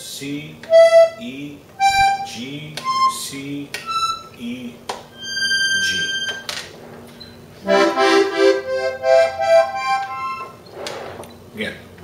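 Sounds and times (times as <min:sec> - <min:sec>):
button accordion rising notes: 0:00.7 - 0:01.2, 0:01.8 - 0:04.4, 0:05.2 - 0:06.5, 0:07.6 - 0:10.6.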